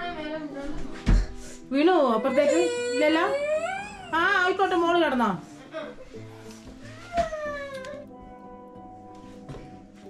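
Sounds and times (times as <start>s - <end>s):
small child whining cry: 2.1s - 4.3s, 6.8s - 8.1s.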